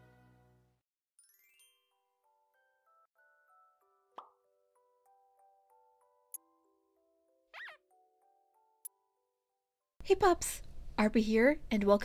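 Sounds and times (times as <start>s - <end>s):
cartoon pop sound effect: 4.2s - 4.4s.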